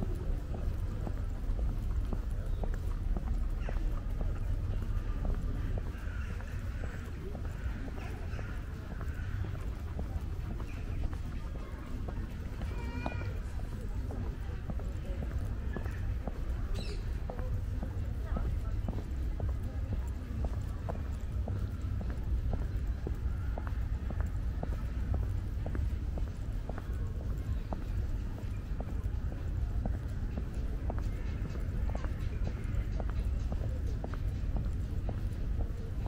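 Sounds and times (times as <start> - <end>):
footsteps on brick paving: 0.0 - 36.0
low outdoor rumble: 0.0 - 36.0.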